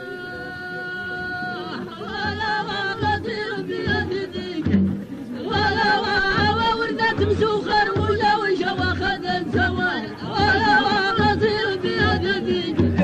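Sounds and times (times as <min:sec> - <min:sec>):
men singing folk song: 0:00.0 - 0:13.0
low drum beat: 0:01.2 - 0:13.0.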